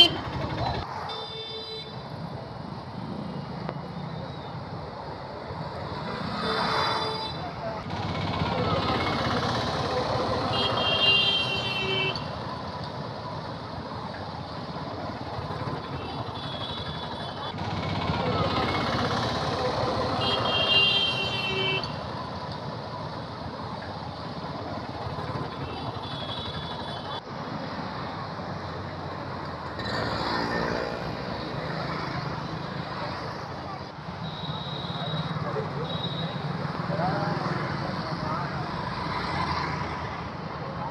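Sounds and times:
vehicle horns honking: 0:00.0 - 0:00.4, 0:01.0 - 0:02.0, 0:06.3 - 0:07.5, 0:10.3 - 0:12.3, 0:19.8 - 0:22.0, 0:25.6 - 0:27.2, 0:34.2 - 0:36.5
motorcycles and autorickshaws passing: 0:00.0 - 0:40.9.

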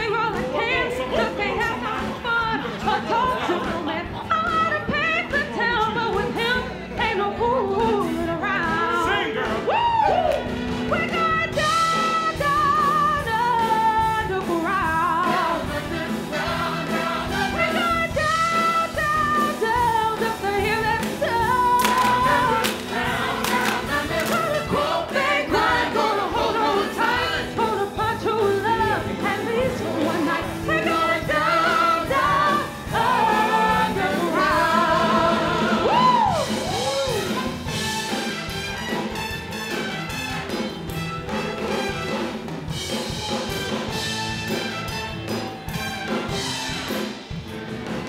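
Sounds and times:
woman singing lead: 0:00.0 - 0:16.4, 0:17.3 - 0:37.4
musical accompaniment: 0:00.0 - 0:48.0
ensemble voices singing: 0:11.6 - 0:36.8.

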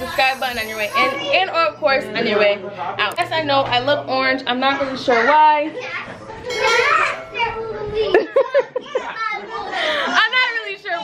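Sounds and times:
chatter of adults and children: 0:00.0 - 0:11.0.

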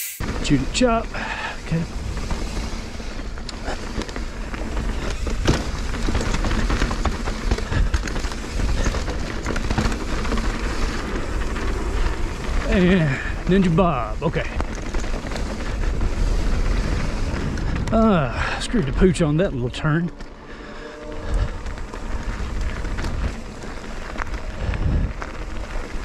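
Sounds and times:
bike knocks and rattles: 0:00.2 - 0:26.0
bike tyres rolling over dirt: 0:00.2 - 0:26.0
low rumble: 0:14.1 - 0:26.0.

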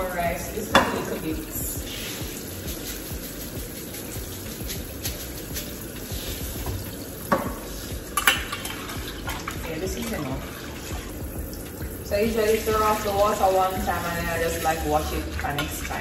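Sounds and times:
water sloshing in a pot: 0:00.0 - 0:16.0.

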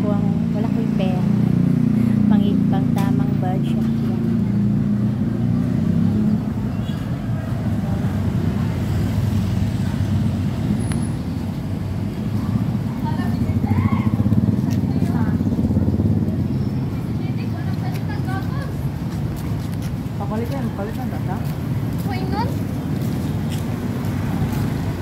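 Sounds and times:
vehicle engine rumbling: 0:00.0 - 0:25.0.

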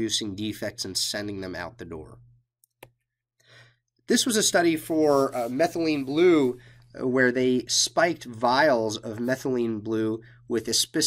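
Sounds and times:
soft breath in: 0:03.4 - 0:03.8
person speaking: 0:04.1 - 0:11.0.

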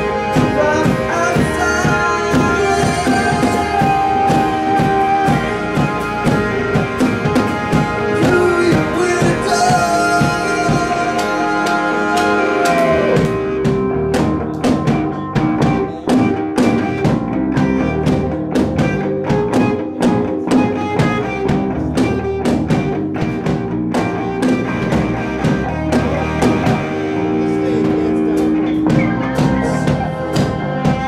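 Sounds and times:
drum kit beat: 0:00.0 - 0:31.0
electric guitars: 0:00.0 - 0:31.0.

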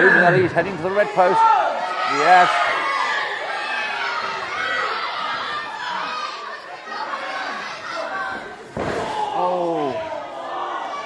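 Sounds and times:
heavy impact slam: 0:08.7 - 0:09.4.

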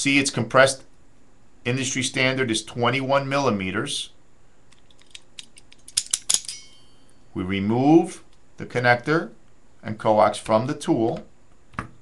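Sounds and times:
sharp tool click: 0:05.0 - 0:06.8.

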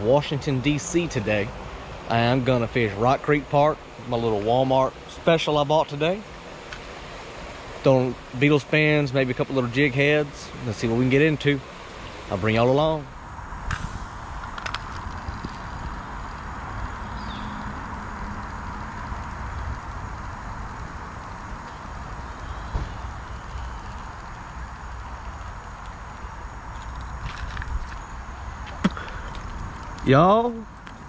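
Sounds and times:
steady hiss: 0:00.0 - 0:31.0
low rumble: 0:13.0 - 0:22.3.

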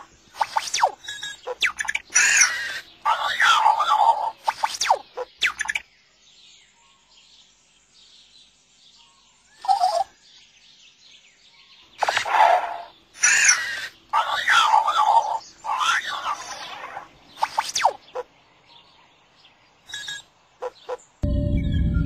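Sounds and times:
faint high twittering: 0:00.0 - 0:07.5, 0:08.9 - 0:10.2, 0:11.4 - 0:22.0
electronic chirping robot voice: 0:19.9 - 0:22.0.

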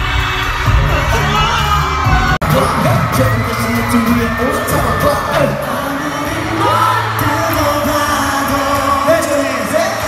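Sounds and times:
faint crowd noise: 0:00.0 - 0:10.0
men singing over backing track: 0:00.0 - 0:10.0.

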